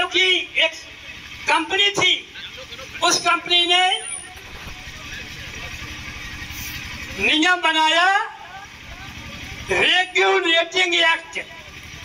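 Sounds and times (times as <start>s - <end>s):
engine running with low rumble: 0.0s - 12.0s.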